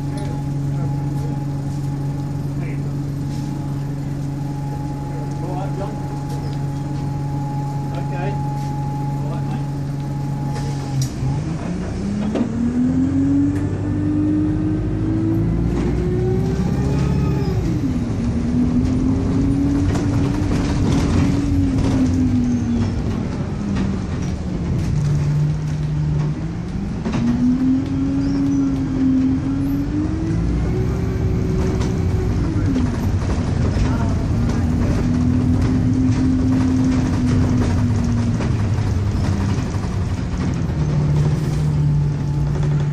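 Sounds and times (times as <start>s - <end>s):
bus engine pulling away: 0.0s - 42.9s
bus interior rattles: 0.0s - 42.9s.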